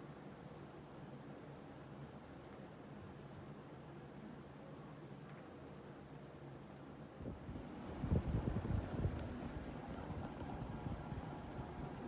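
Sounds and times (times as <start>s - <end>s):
fan air buffeting microphone: 7.1s - 12.0s.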